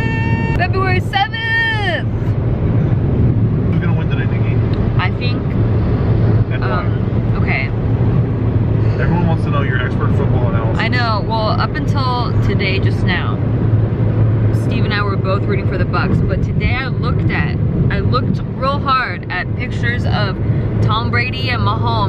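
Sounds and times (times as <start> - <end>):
road and engine noise in car: 0.0 - 22.0
voices talking: 3.8 - 5.5, 6.5 - 7.7, 8.8 - 13.4, 14.6 - 22.0.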